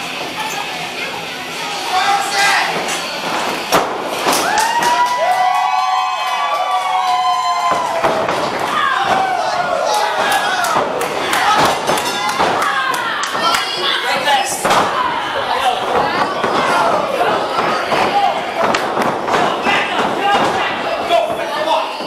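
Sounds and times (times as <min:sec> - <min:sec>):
crowd shouting and cheering: 0:01.7 - 0:22.0
thuds and slaps of wrestling: 0:07.6 - 0:09.4, 0:15.9 - 0:20.8.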